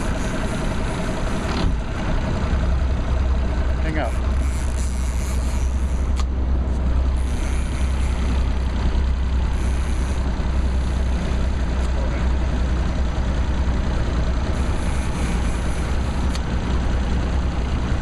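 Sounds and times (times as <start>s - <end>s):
outboard motor running: 0.0s - 18.0s.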